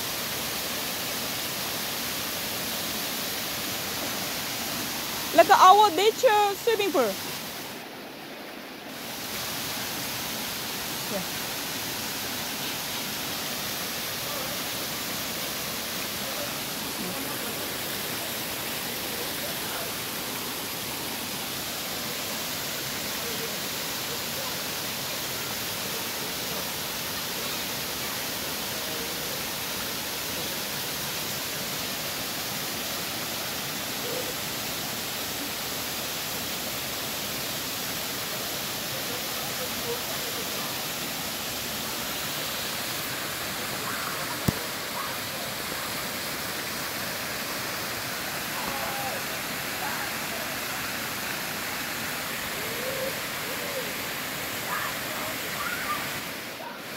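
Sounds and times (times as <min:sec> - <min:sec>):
waterfall rushing into pool: 0:00.0 - 0:56.9.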